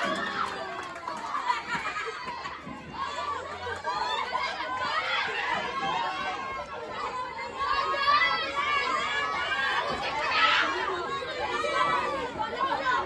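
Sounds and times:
chatter of overlapping voices: 0.0 - 13.0.

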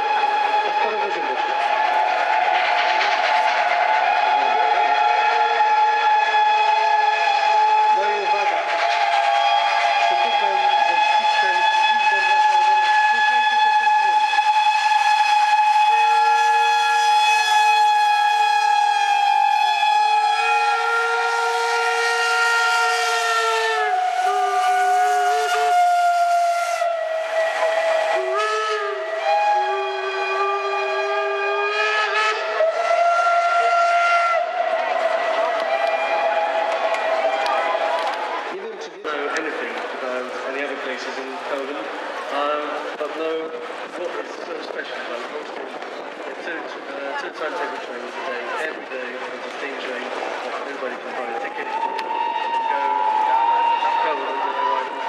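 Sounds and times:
steam hissing: 0.0 - 34.4
steam locomotive whistles: 0.0 - 43.8, 47.1 - 55.0.

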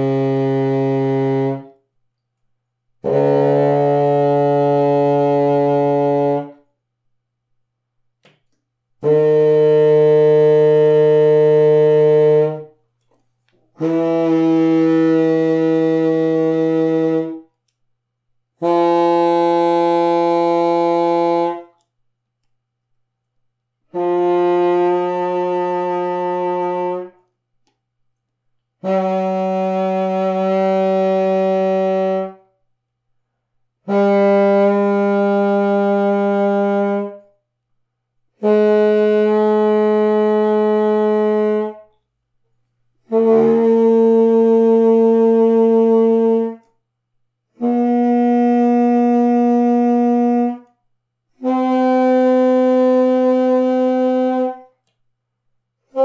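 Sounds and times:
contrabassoon held notes: 3.0 - 6.6, 13.8 - 17.4, 23.9 - 27.2, 43.1 - 46.7.

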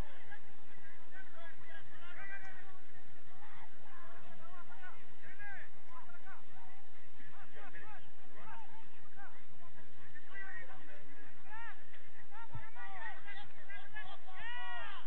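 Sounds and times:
people shouting: 12.5 - 15.0.

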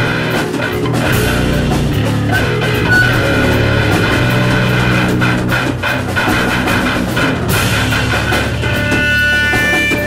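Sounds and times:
bass guitar low notes: 0.0 - 9.0
drum and cymbal hits: 0.0 - 10.0
electric guitar low notes: 0.8 - 8.7.

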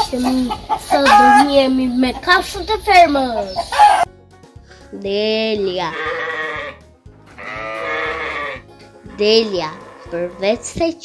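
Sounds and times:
light background music: 0.0 - 11.0
sheep bleating: 5.8 - 10.8.

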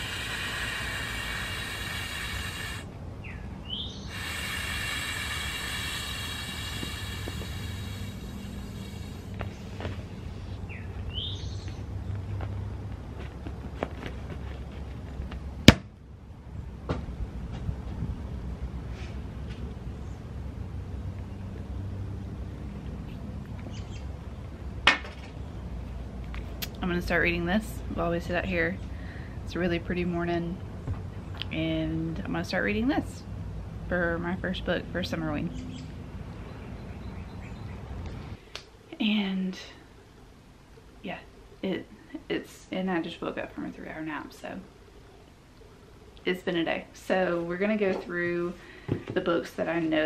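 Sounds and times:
steady background hiss: 0.0 - 13.3, 14.6 - 50.0
low outdoor background rumble: 0.0 - 50.0.

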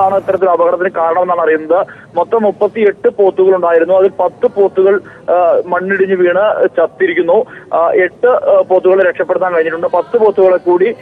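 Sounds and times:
man talking over phone line: 0.0 - 11.0.

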